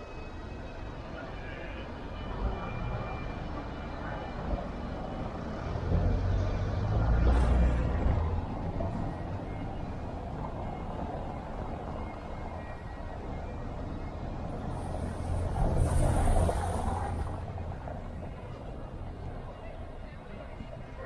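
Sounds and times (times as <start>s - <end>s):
street noise: 0.0s - 21.0s.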